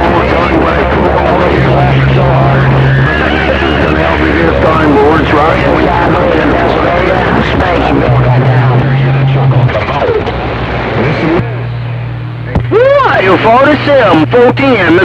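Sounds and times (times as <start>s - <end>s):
garbled radio voices: 0.0s - 15.0s
steady low hum: 0.0s - 15.0s.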